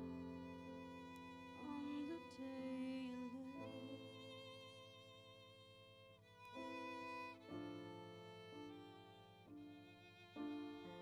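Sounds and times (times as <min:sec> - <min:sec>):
violin playing long notes: 0:00.0 - 0:11.0.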